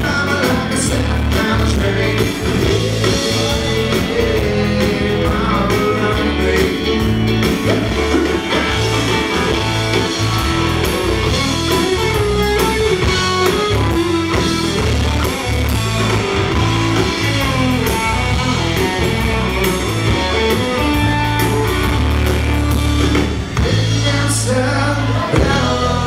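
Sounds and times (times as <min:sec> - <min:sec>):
bass guitar: 0:00.0 - 0:26.0
drum kit: 0:00.0 - 0:26.0
lead guitar: 0:00.0 - 0:26.0.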